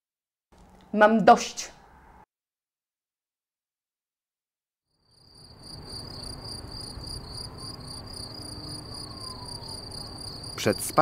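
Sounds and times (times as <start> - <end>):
crickets chirping: 4.9 - 11.0.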